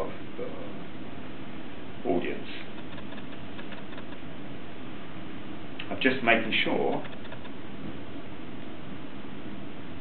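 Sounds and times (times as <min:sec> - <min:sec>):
room noise hiss: 0:00.0 - 0:10.0.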